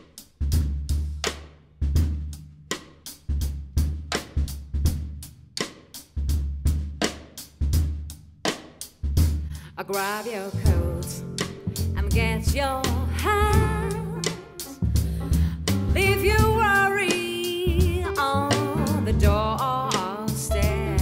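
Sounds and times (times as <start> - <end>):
jazz drum kit: 0.0 - 21.0
deep bass notes: 10.6 - 21.0
person singing: 12.0 - 14.8, 16.0 - 21.0.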